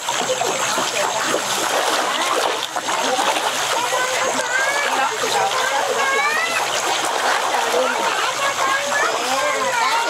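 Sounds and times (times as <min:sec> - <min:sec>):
fish splashing at water surface: 0:00.0 - 0:10.0.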